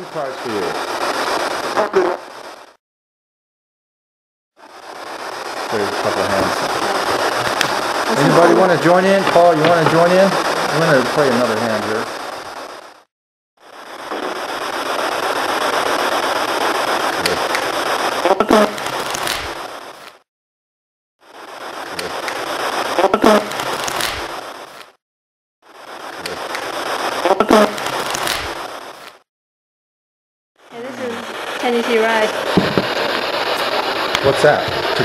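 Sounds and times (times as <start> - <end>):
amplified recorder hiss: 0.0 - 2.8, 4.6 - 13.0, 13.6 - 20.2, 21.3 - 24.9, 25.7 - 29.2, 30.7 - 35.0.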